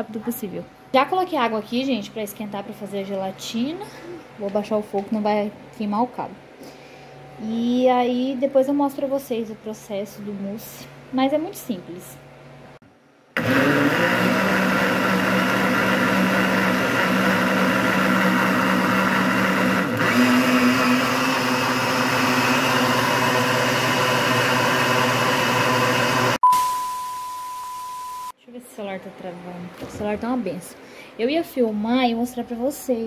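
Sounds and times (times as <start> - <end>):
blender running: 13.4 - 26.4
steady test-tone beep: 26.4 - 28.4.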